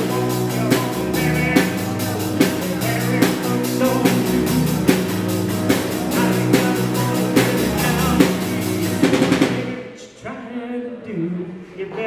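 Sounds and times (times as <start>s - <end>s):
drum hits: 0.0s - 9.8s
rock and roll band playing: 0.0s - 9.9s.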